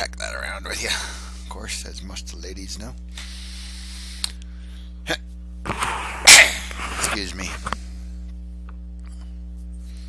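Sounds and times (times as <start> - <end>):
steady electrical hum: 0.0 - 10.0
loud sneeze: 6.1 - 6.7.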